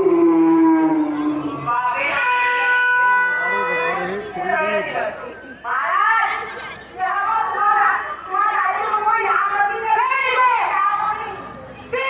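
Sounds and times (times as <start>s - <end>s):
voice over loudspeaker: 1.4s - 5.3s.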